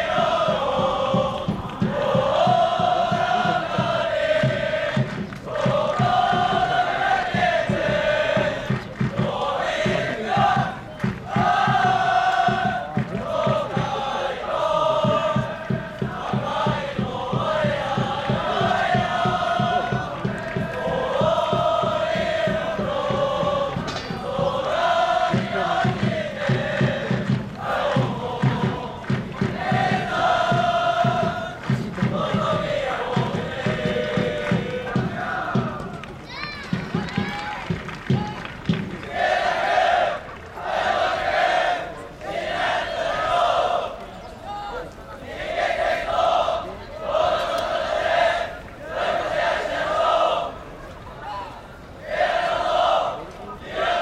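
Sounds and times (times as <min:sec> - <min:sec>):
group of men chanting in unison: 0:00.0 - 0:36.0, 0:39.1 - 0:44.0, 0:44.6 - 0:50.6.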